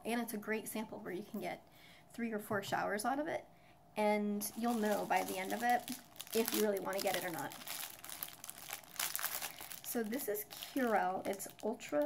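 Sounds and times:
plastic pouch crinkling: 0:04.4 - 0:12.0.

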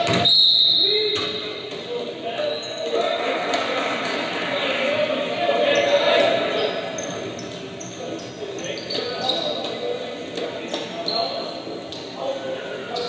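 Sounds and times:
crowd chatter in large hall: 0:00.0 - 0:13.0.

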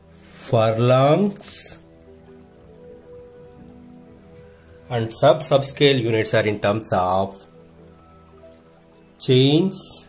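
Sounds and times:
soft music with held notes: 0:00.0 - 0:10.0.

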